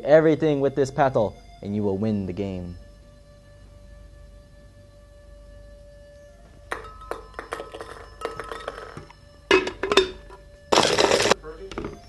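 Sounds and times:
glassware and dishes clinking: 6.7 - 12.0.

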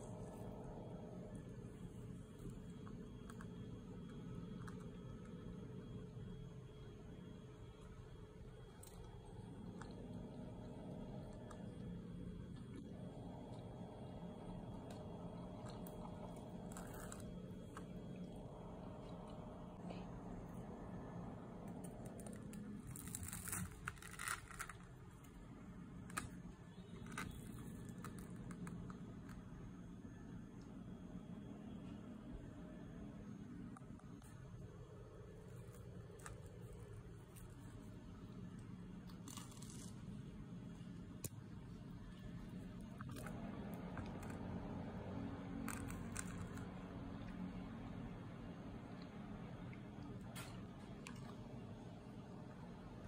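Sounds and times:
low steady hum: 0.0 - 53.0
fried bread crust crackling: 21.9 - 25.0, 39.0 - 40.2
knife cutting crunchy crust: 39.2 - 40.1.

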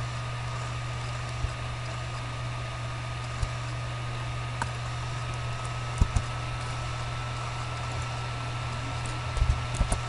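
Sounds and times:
electrical hum and hiss: 0.0 - 10.0.

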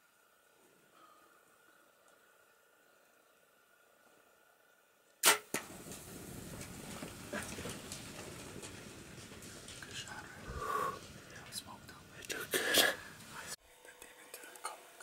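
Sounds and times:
bow shot crack: 5.2 - 6.0
hooves scuffling on dry ground: 5.6 - 11.9.

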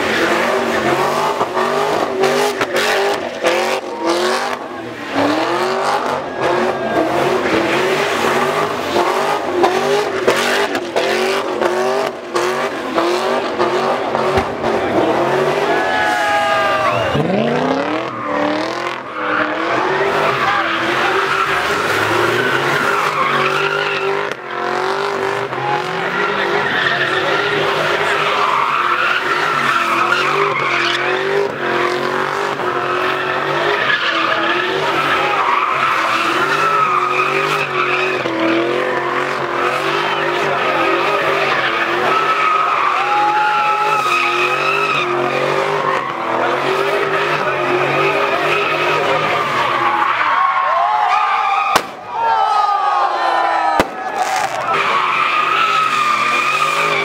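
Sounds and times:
car engine at high revs: 0.0 - 50.6, 53.8 - 57.0
tyres screeching: 13.6 - 52.2, 53.5 - 57.0.

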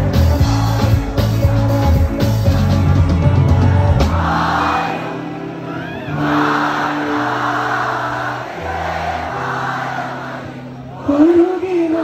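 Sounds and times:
bass notes: 0.0 - 4.8
live band playing: 0.0 - 7.4.

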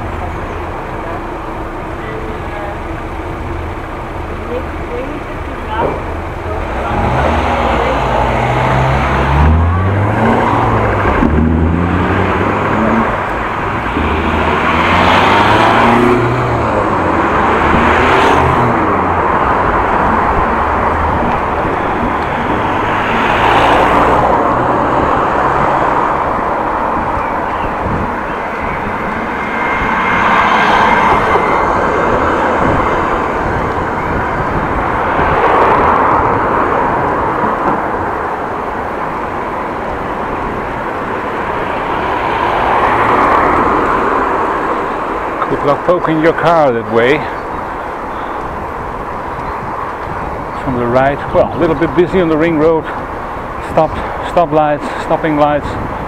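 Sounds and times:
cars passing: 0.0 - 56.0.

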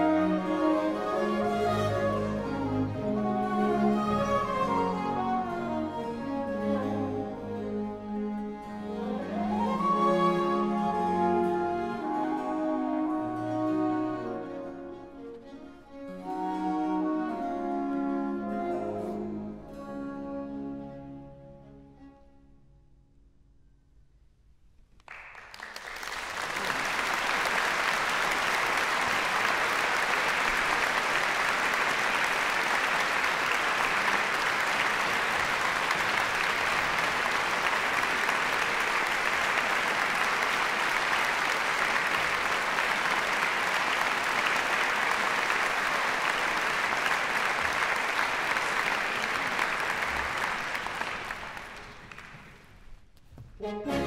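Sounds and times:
audience applause: 25.1 - 52.7.

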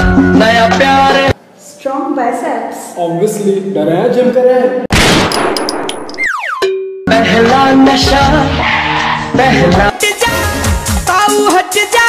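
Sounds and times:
clanging strikes: 5.0 - 6.8
held ding-like tone: 5.9 - 7.1.

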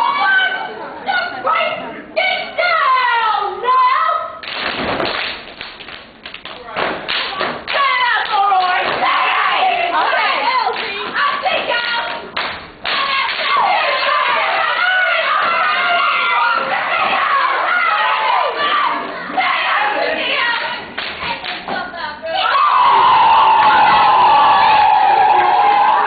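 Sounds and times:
hand claps: 4.4 - 9.1, 12.1 - 13.5, 21.0 - 21.8
foot stomps: 4.6 - 5.8
audience cheering and shouting: 13.0 - 20.6, 22.3 - 26.0.

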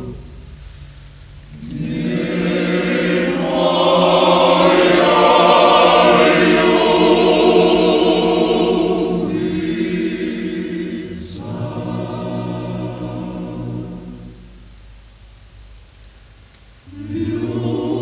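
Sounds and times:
male choir singing: 1.6 - 14.6, 16.9 - 18.0.

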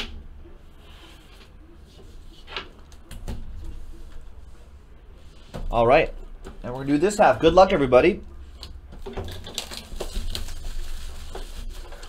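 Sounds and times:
cardboard box and foil pack rustling: 9.2 - 12.0.

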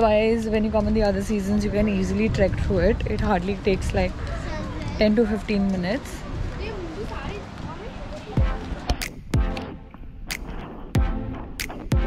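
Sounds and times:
people talking: 0.0 - 9.1
electronic music: 8.4 - 12.0.

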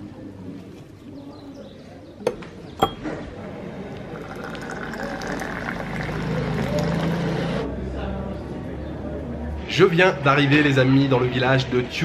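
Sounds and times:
tea pouring into a glass: 4.0 - 7.6.

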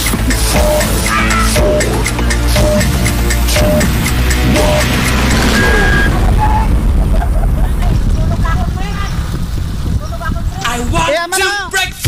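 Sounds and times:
voices calling out: 0.0 - 6.8
wind rumble on microphone: 5.4 - 12.0.

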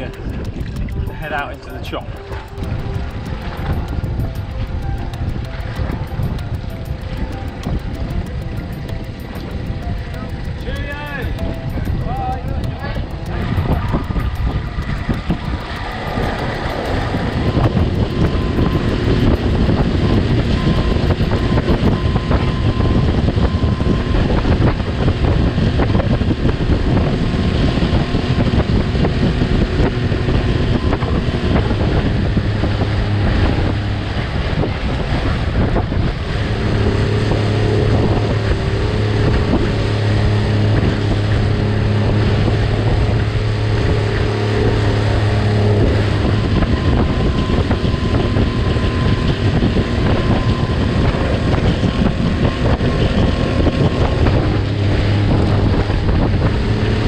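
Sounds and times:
speedboat engine humming: 0.0 - 57.0
wind buffeting microphone: 0.0 - 57.0.

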